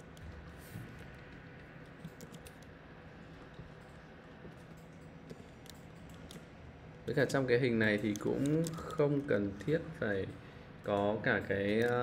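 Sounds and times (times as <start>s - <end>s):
computer keyboard clicks: 0.0s - 2.7s, 3.8s - 6.5s.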